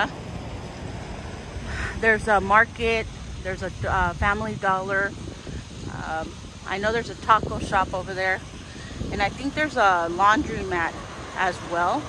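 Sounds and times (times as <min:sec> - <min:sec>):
road traffic: 0:00.0 - 0:12.0
wind: 0:00.0 - 0:12.0.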